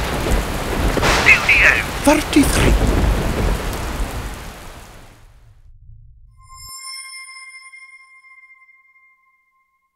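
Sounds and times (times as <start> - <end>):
rain and thunder rumble: 0.0 - 5.8
bright electronic chime: 6.4 - 9.9.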